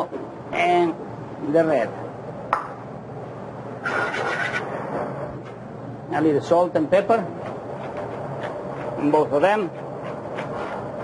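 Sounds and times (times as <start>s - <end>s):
squeaky scrape: 3.8s - 4.7s.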